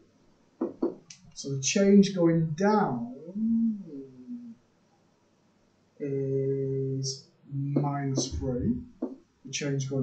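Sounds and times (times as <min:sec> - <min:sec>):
person humming hesitation sound: 0:02.6 - 0:04.6.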